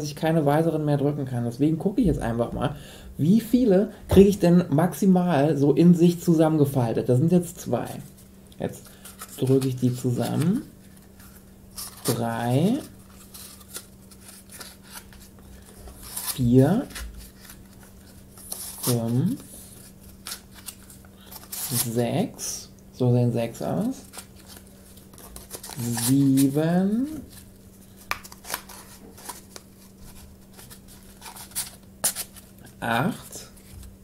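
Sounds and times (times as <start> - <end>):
cardboard tubes scraping and crinkling: 9.0 - 22.0, 24.0 - 32.6
cardboard tubes scraping and crackling: 24.0 - 27.5.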